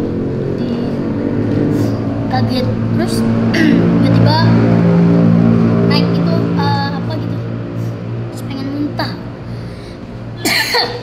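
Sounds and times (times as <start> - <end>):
person coughing: 3.6 - 3.9, 10.4 - 11.0.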